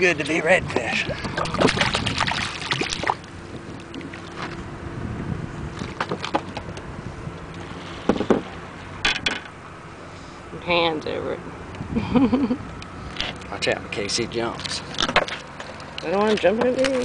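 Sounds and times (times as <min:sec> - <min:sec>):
steady low hum: 0:00.0 - 0:17.0
fish splashing and thrashing: 0:00.9 - 0:04.7, 0:05.7 - 0:06.9, 0:14.6 - 0:16.0.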